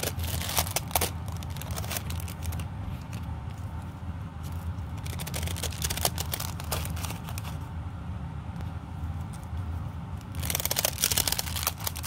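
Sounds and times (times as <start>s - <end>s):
tissue paper crackling and rustling: 0.0s - 3.3s, 4.5s - 7.6s, 10.3s - 12.0s.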